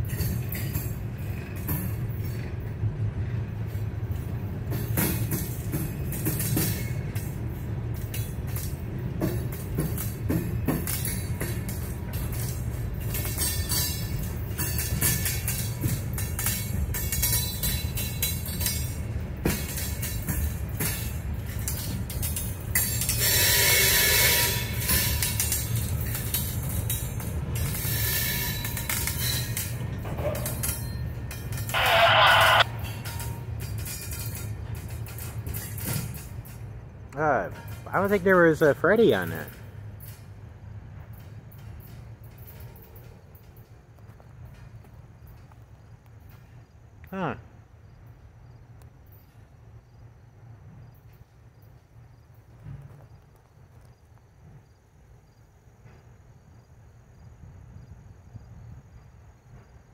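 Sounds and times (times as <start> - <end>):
train wheel clicks and knocks: 0.0 - 31.8, 32.6 - 47.1, 48.0 - 56.3
freight train rumbling past: 0.0 - 59.9
loud hiss: 31.8 - 32.6
short loud shrill sound: 31.8 - 32.8.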